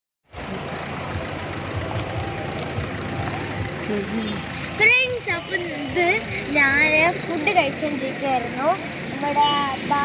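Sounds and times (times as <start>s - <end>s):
passing traffic: 0.3s - 10.0s
people moving about: 0.4s - 8.0s.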